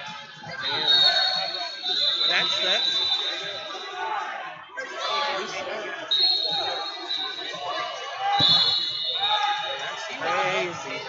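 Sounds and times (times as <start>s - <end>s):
voices calling out in a hall: 0.0s - 11.0s.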